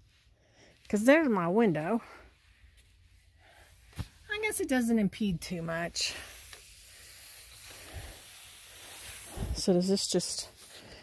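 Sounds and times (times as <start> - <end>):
steady outdoor hiss: 0.0 - 11.0.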